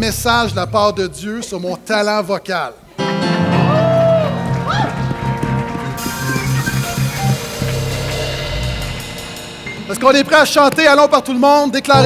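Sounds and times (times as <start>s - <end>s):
live band music: 3.0s - 12.0s
drum kit with cymbals: 6.0s - 12.0s.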